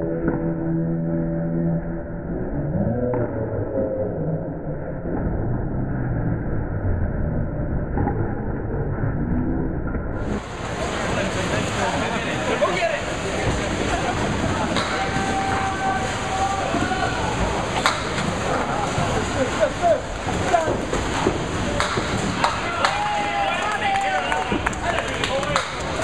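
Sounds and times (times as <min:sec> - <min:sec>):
bowling balls rolling on wooden lanes: 0:00.0 - 0:26.0
chatter of people: 0:10.2 - 0:26.0
sharp knocks: 0:21.0 - 0:23.0.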